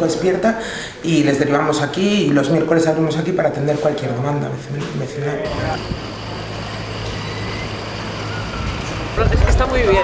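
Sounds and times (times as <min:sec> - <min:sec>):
outdoor noise: 0:04.8 - 0:10.0
low mechanical hum: 0:05.3 - 0:10.0.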